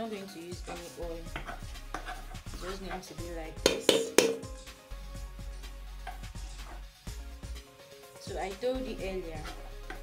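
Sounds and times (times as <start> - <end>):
background music: 0.0 - 10.0
metal spoon striking a pot: 3.6 - 4.5.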